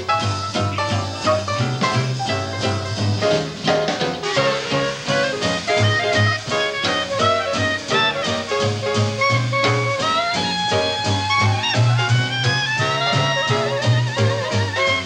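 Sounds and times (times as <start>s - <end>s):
clarinet lead line: 0.0s - 15.0s
jazz band playing swing: 0.0s - 15.0s.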